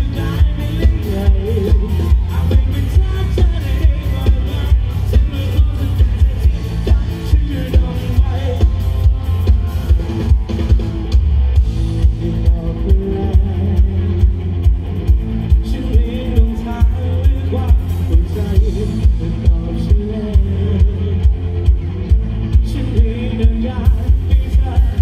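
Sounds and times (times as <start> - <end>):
person singing: 0.0 - 10.8, 12.0 - 25.0
drum-kit beat: 0.0 - 25.0
heavy bass and electric guitars: 0.0 - 25.0.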